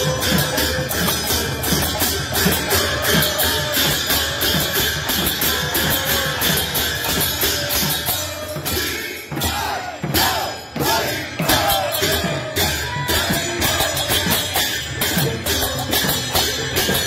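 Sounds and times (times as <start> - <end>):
drum: 0.0 - 17.0
hand cymbal strokes: 0.0 - 17.0
voices chanting together: 0.0 - 17.0.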